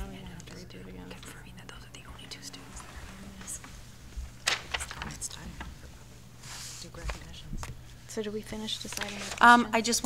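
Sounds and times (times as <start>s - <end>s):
faint speech and murmuring: 0.0s - 3.9s
steady low hum: 0.0s - 10.0s.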